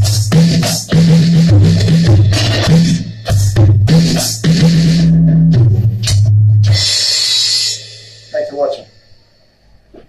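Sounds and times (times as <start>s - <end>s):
music with low bass line: 0.0s - 7.7s
electronic drum kit: 0.0s - 10.0s.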